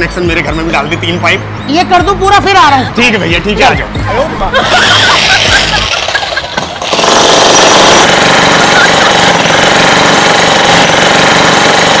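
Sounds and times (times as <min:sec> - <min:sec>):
jackhammer breaking concrete: 0:05.0 - 0:12.0.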